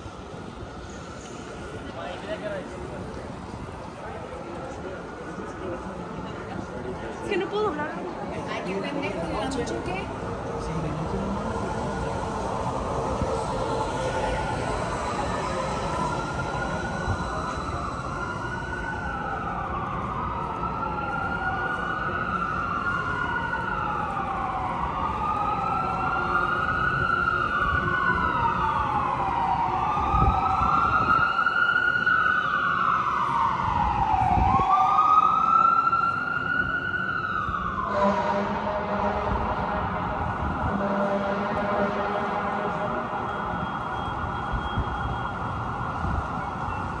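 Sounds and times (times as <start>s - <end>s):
siren wailing: 8.4s - 47.0s.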